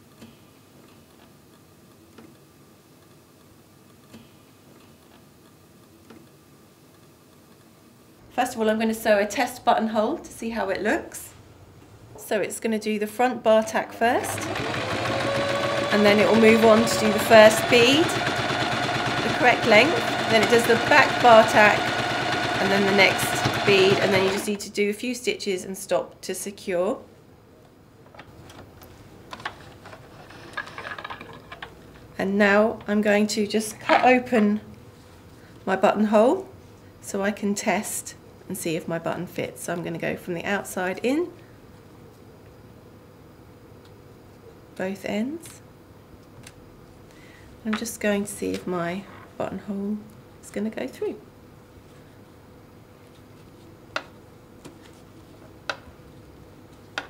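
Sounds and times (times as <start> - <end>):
faint steady hum: 0.0 - 57.0
sewing machine clicks and ticks: 14.2 - 24.5.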